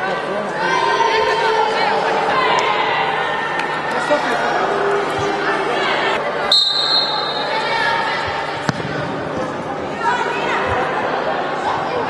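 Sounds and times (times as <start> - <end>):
voices echoing in hall: 0.0 - 12.0
referee's whistle: 6.5 - 7.5
ball kick: 8.6 - 9.5.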